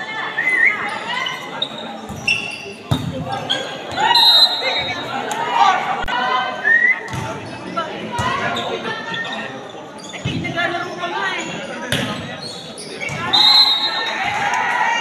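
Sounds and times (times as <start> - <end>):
voices of players and spectators: 0.0 - 15.0.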